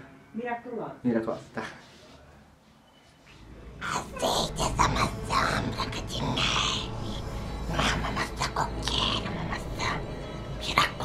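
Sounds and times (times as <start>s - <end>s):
low steady hum: 3.4s - 11.0s.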